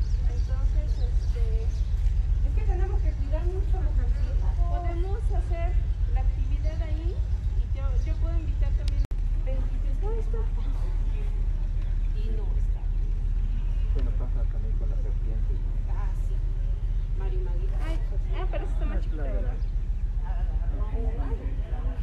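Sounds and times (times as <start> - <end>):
faint indistinct voices: 0.0 - 22.0
wind rumble on microphone: 0.0 - 22.0.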